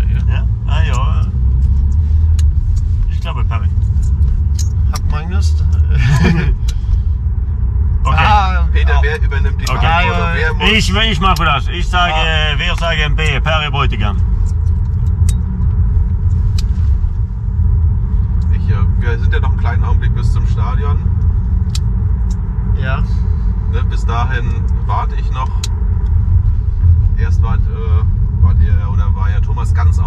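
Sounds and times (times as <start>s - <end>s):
road and engine rumble in car: 0.0s - 30.0s.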